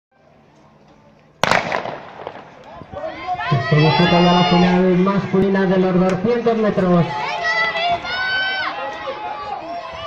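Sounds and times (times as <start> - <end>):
faint stadium background: 0.1 - 10.0
starter's pistol shot: 1.4 - 2.5.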